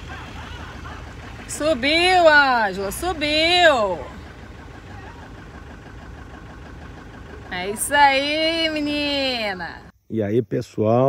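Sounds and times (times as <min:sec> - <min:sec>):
van engine running at low revs: 0:00.0 - 0:10.0.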